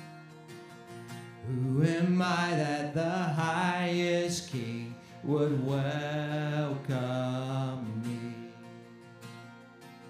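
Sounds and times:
acoustic guitar strumming: 0.0s - 10.0s
man singing: 1.4s - 8.7s.

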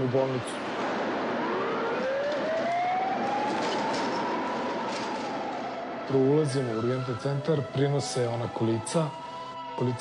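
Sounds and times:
emergency vehicle siren: 0.0s - 10.0s
street traffic: 0.0s - 10.0s.

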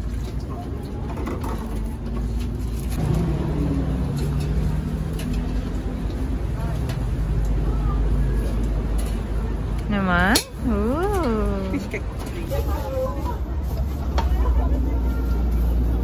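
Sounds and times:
motor vehicle engine rumble: 0.0s - 16.0s
people talking: 9.5s - 15.7s.

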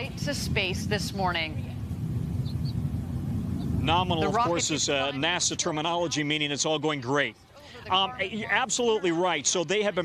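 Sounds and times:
rocket engine rumble: 0.0s - 7.0s.

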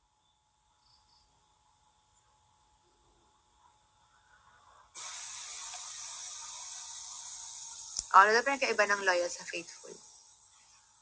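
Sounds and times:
steady hiss: 4.0s - 11.0s.

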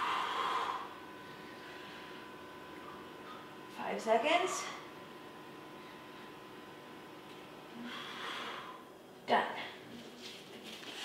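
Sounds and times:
person exhaling hard: 7.8s - 8.8s.

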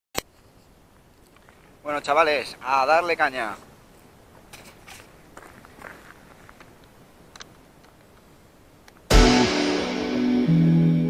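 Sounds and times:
man speaking: 1.8s - 3.6s
tiny ticks: 6.5s - 9.1s.

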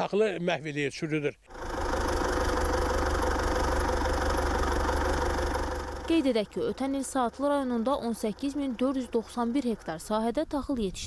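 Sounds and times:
tractor diesel engine running: 1.5s - 11.0s.

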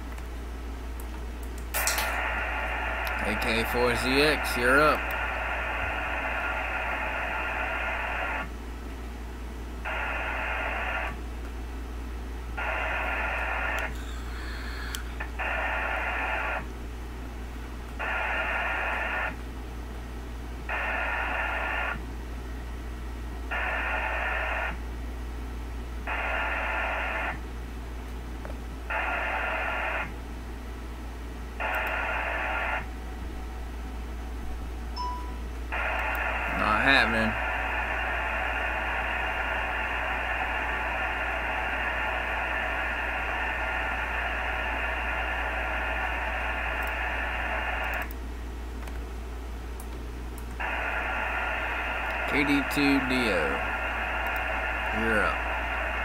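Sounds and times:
steady low hum: 0.0s - 56.0s
radio band hiss: 1.8s - 8.5s, 9.8s - 11.2s, 12.6s - 16.7s, 18.0s - 19.4s, 20.6s - 22.1s, 23.5s - 24.8s, 26.0s - 27.5s, 28.8s - 30.2s, 31.5s - 32.9s, 35.7s - 48.1s, 50.6s - 56.0s
digital modem data tones: 13.7s - 15.2s, 52.1s - 55.4s.

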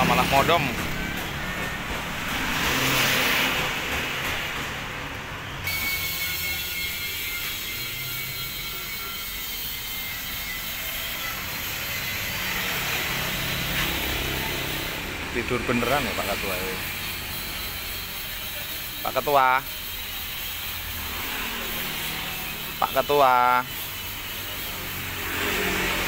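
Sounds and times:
vehicle passing by: 0.0s - 5.5s, 11.3s - 17.6s, 21.0s - 22.8s, 24.7s - 26.0s
traffic noise with engine hum: 0.0s - 26.0s.

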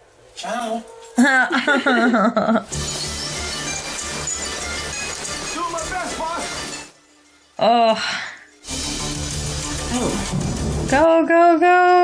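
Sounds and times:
person laughing: 1.2s - 2.7s
film soundtrack music with low beat: 8.6s - 11.0s.

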